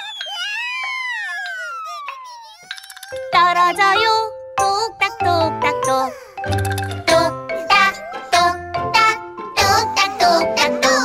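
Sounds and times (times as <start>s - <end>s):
cartoon character quavering wail: 0.0s - 2.7s
descending cartoon whistle: 0.0s - 2.7s.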